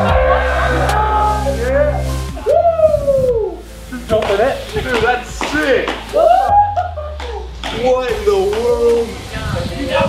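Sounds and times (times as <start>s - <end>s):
people whooping and yelling: 0.0s - 3.7s, 6.1s - 8.0s
background music: 0.0s - 10.0s.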